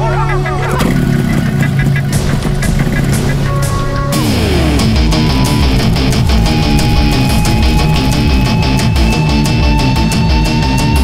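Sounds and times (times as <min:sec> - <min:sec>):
dense rumbling: 0:00.0 - 0:11.0
dramatic film score music: 0:00.0 - 0:11.0
sharp hits: 0:00.8 - 0:10.2.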